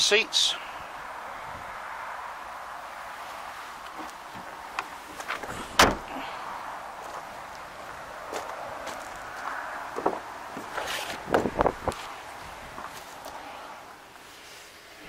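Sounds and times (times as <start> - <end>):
steady background hiss: 0.0 - 15.0
tailgate slamming thud: 5.3 - 6.2.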